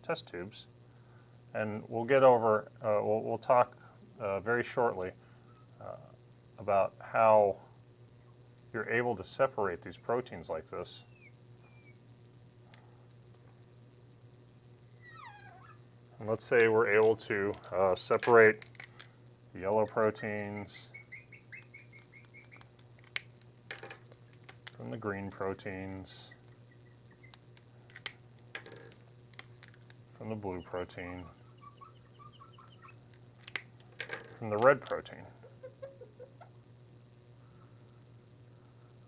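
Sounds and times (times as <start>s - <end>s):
low steady hum: 0.0s - 39.0s
marker squeaking on glass: 11.0s - 12.0s, 15.0s - 15.8s, 20.6s - 22.7s, 30.5s - 33.0s.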